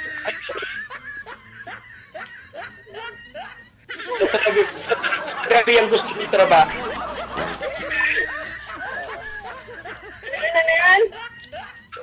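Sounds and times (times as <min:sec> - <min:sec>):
people laughing: 0:00.0 - 0:12.0.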